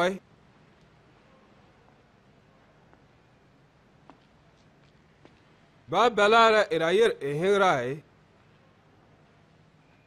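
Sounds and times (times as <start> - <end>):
man speaking: 0.0 - 0.2, 5.9 - 8.0.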